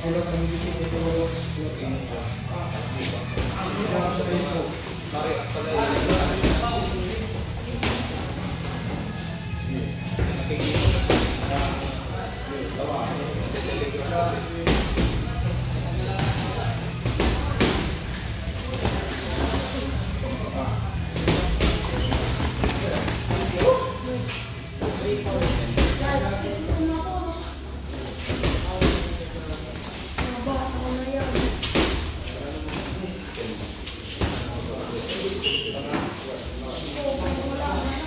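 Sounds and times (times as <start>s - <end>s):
background music: 0.0s - 29.4s
voices in a gym: 0.0s - 38.0s.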